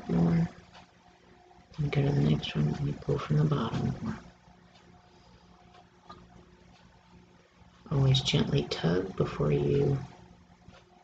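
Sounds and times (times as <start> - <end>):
faint low room hum: 0.0 - 11.0.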